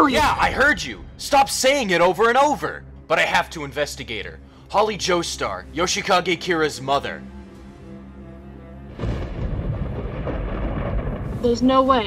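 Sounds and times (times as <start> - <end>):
deep rumbling: 7.4 - 12.0.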